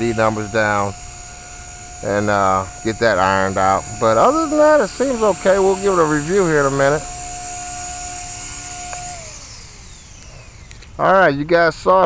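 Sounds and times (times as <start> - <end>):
rc helicopter motor whining: 0.0 - 12.0.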